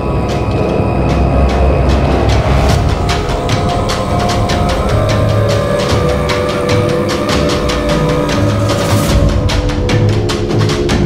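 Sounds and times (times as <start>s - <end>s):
held musical note: 0.0s - 10.7s.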